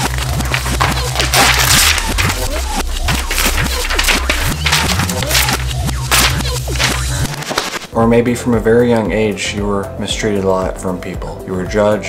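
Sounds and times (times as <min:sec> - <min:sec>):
paper ripping and crinkling: 0:00.0 - 0:07.9
background music with bass: 0:00.0 - 0:12.0.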